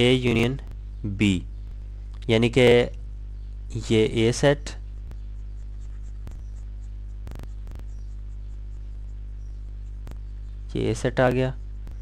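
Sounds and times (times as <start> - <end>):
low electrical hum: 0.0 - 12.0
faint clicks: 9.8 - 10.3.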